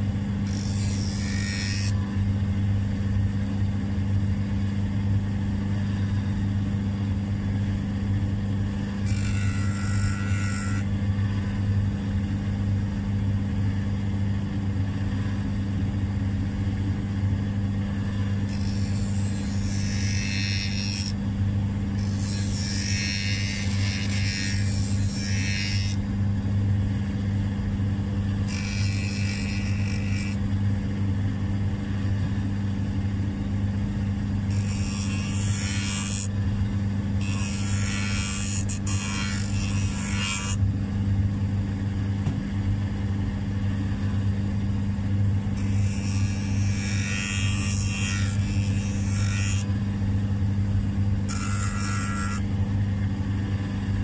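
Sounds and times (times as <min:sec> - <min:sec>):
belt sander motor hum: 0:00.0 - 0:02.4, 0:08.6 - 0:11.8, 0:17.8 - 0:26.2, 0:27.6 - 0:32.4, 0:33.9 - 0:40.8, 0:45.4 - 0:54.0.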